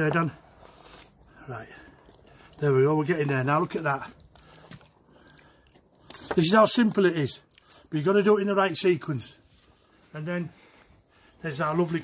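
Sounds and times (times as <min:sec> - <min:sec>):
wooden spoon stirring in a pot: 0:00.0 - 0:11.3.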